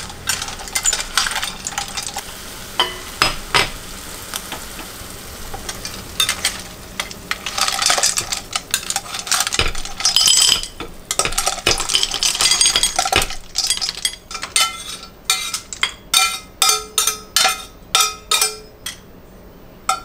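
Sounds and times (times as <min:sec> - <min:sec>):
snails sizzling in a pot: 0:00.0 - 0:16.6
ladle clinking among shells: 0:07.3 - 0:19.0.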